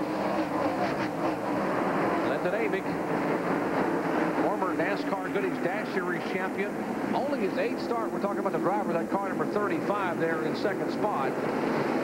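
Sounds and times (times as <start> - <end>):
race cars passing at speed: 0.0 - 12.0.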